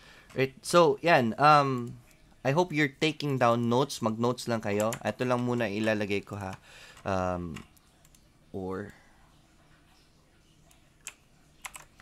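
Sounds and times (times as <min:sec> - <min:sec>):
faint keyboard keystrokes: 0:10.6 - 0:12.0.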